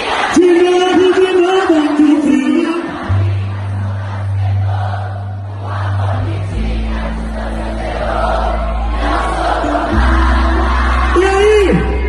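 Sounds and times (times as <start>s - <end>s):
crowd singing along: 0.0s - 12.0s.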